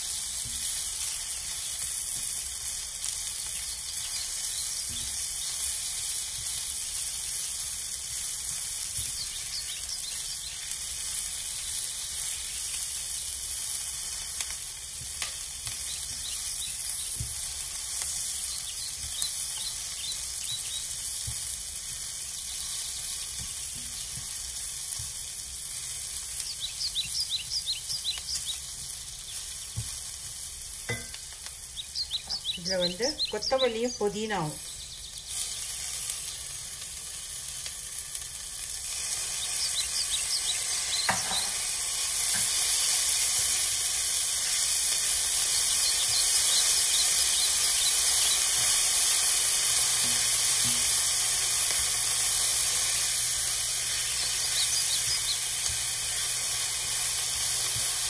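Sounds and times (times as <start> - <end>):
onions sizzling in oil: 0.0 - 58.0
spatula stirring in pan: 29.5 - 31.3.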